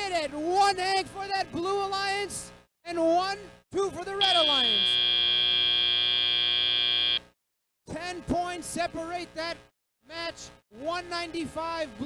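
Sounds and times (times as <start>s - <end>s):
steady high buzzer: 4.2s - 7.4s.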